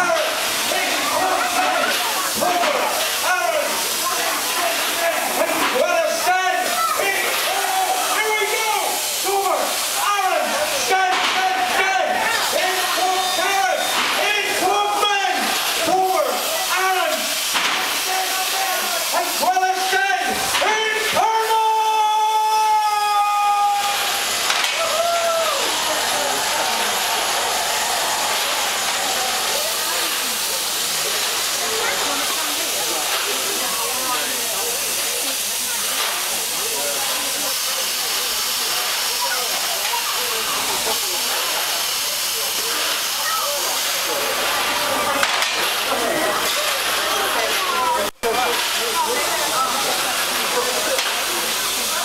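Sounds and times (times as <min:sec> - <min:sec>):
crowd voices: 0:00.0 - 0:52.0.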